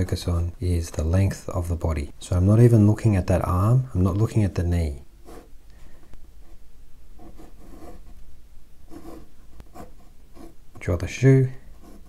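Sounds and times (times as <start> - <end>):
pen scratching on paper: 5.2 - 5.5, 7.2 - 8.2, 8.9 - 10.6, 11.6 - 12.0.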